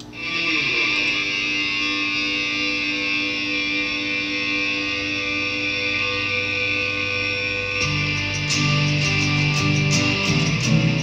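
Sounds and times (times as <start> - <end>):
electric guitar chord ringing: 0.0 - 11.0.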